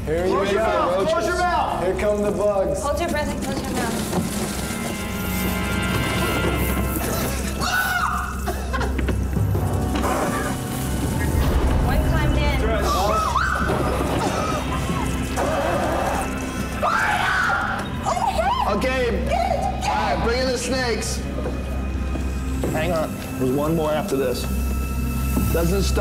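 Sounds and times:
tense background music with drone: 0.0s - 26.0s.

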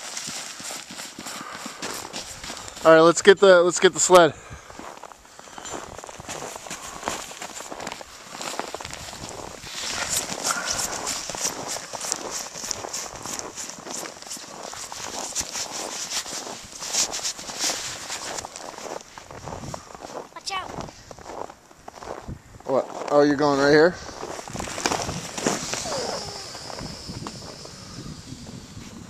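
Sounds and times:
footsteps crunching in snow: 0.0s - 29.0s.

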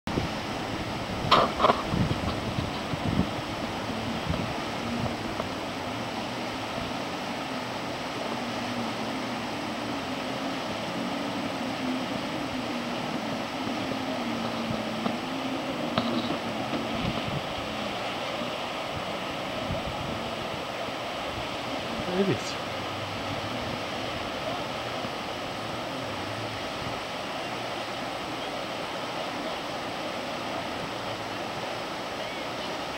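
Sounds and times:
distant jet-ski engines: 0.1s - 32.9s
river rapids rushing: 0.1s - 32.9s.

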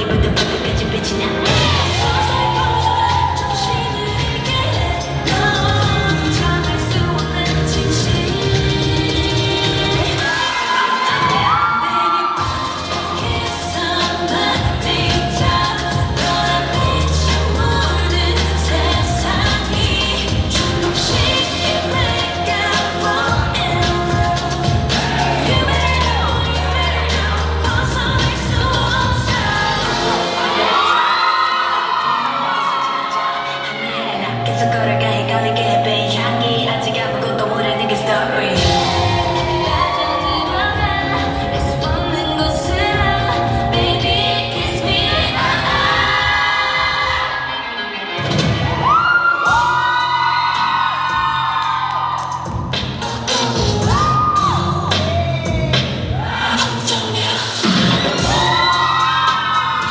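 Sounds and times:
pop song with singing: 0.0s - 59.9s.

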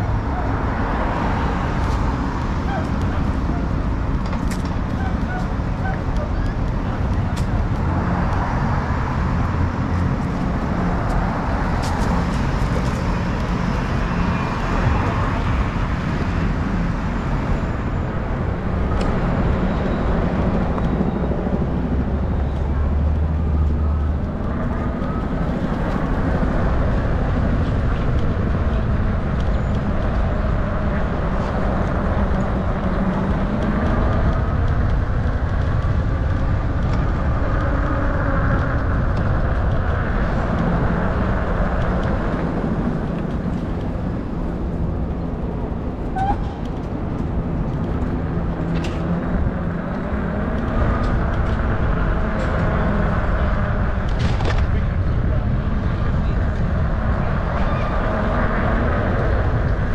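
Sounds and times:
city street traffic: 0.0s - 59.9s.

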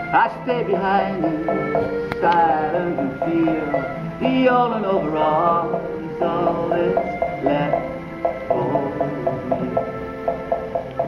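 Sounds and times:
acoustic guitar strumming: 0.0s - 11.0s
pitched percussion clicks: 0.1s - 11.0s.

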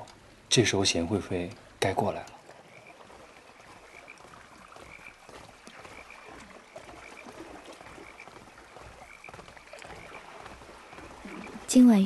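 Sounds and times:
frogs croaking: 0.0s - 12.0s.

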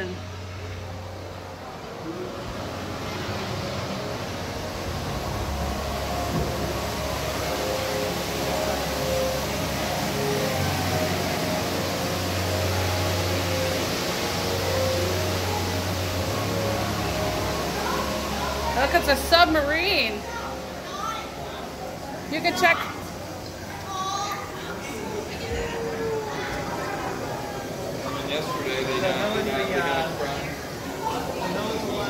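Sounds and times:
low steady rumble: 0.0s - 20.8s
distant overlapping voices: 0.0s - 32.0s.

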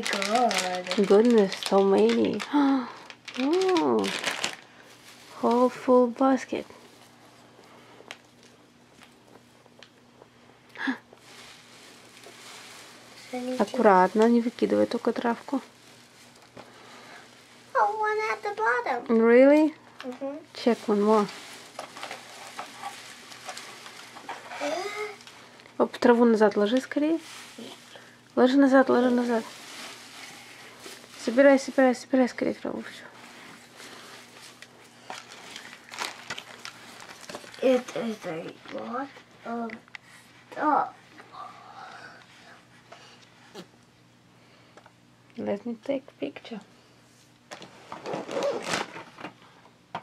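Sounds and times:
shredded paper grass rustling: 0.0s - 2.7s, 3.3s - 6.1s, 11.2s - 19.0s, 20.3s - 25.5s, 26.5s - 39.0s
plastic packaging crinkling: 0.0s - 6.9s, 11.2s - 39.1s, 47.5s - 49.2s.

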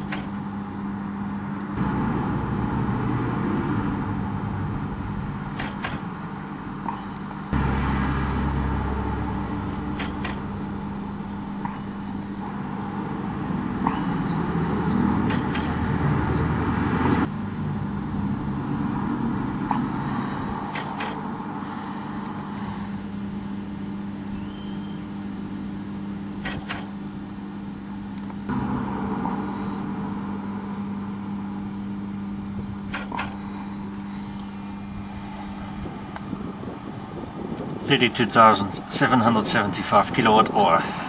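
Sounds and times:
low mechanical hum: 0.0s - 41.0s.

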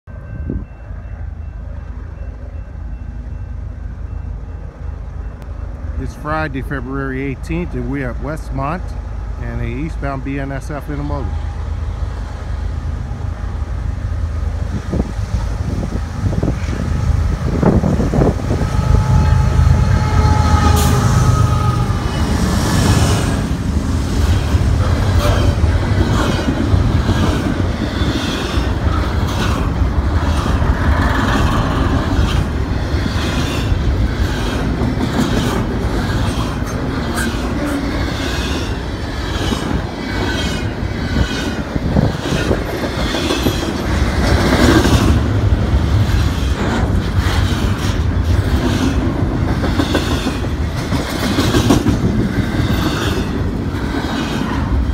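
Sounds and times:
train wheels rumbling on rail: 0.1s - 54.9s
clickety-clack over rail joints: 24.1s - 54.9s.

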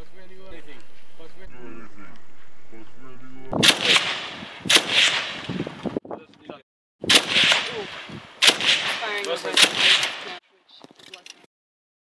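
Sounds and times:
machine gun shots echoing: 3.6s - 5.6s, 7.1s - 10.4s.

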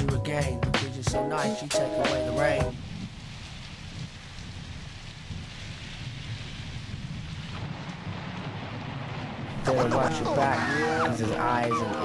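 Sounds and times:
steady rain falling: 0.0s - 12.0s.

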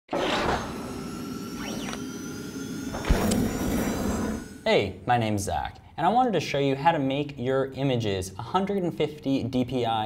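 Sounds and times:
synthetic pitch sweeps: 0.3s - 5.1s.

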